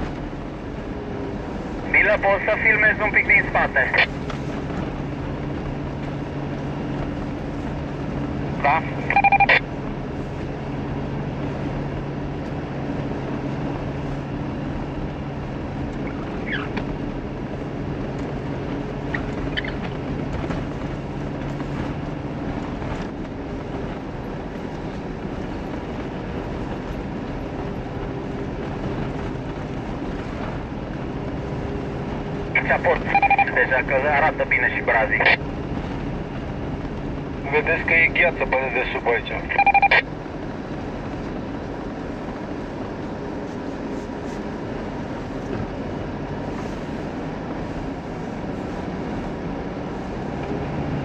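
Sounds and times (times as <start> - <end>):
car engine hum and tyre noise: 0.0 - 51.0
loud beeping tones: 8.9 - 9.6, 32.9 - 33.7, 39.4 - 40.0.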